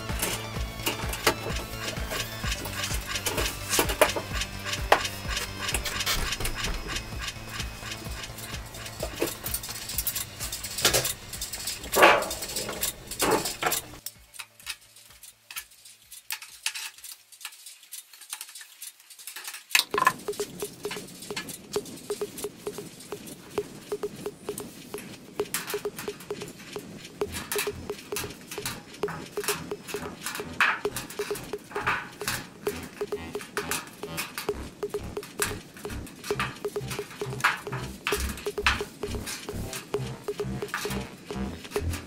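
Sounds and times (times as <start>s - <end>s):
background music: 0.0s - 14.7s, 27.2s - 42.0s
metallic clicks and taps: 19.8s - 42.0s.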